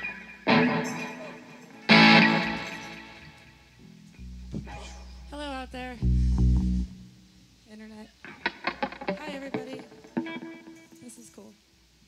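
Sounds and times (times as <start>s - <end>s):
deep electric bass note: 4.2s - 7.2s.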